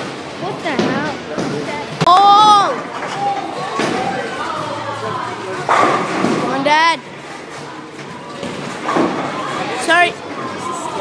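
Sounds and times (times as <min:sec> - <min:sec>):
bowling alley background noise: 0:00.0 - 0:11.0.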